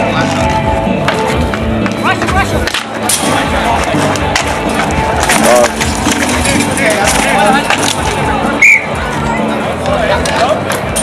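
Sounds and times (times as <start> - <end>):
music: 0.0 - 11.0
voices: 1.8 - 11.0.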